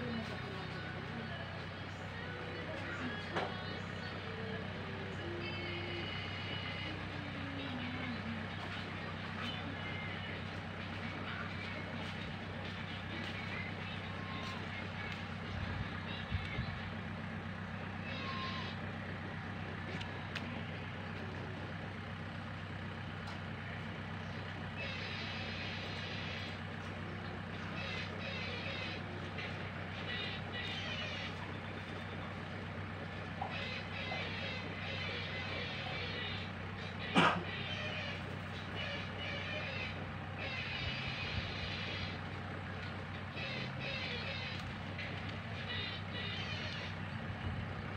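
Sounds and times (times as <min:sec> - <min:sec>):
low engine hum: 0:00.0 - 0:47.9.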